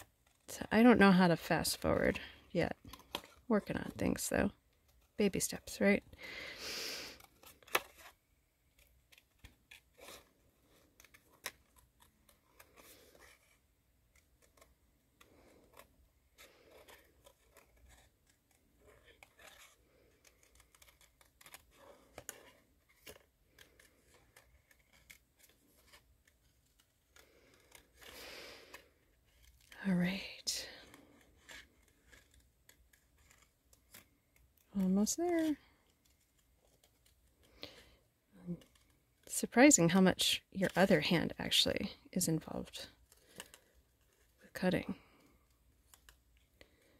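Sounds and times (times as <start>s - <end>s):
scissors snipping cardstock: 7.2s - 28.2s, 30.8s - 37.1s.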